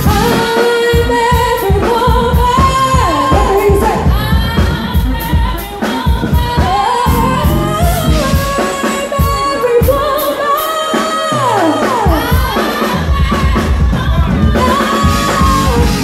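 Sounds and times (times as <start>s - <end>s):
band with drums and bass: 0.0s - 16.0s
woman singing with vibrato: 0.0s - 16.0s.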